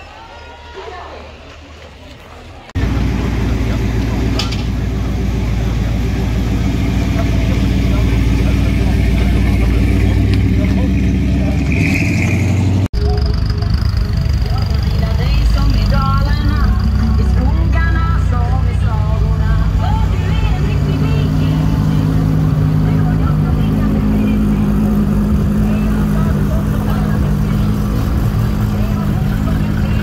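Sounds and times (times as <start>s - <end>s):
car engines running loud: 2.1s - 30.0s.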